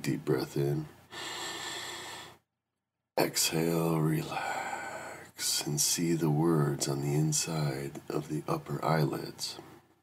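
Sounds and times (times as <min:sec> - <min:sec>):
person breathing in deeply: 0:01.1 - 0:02.4.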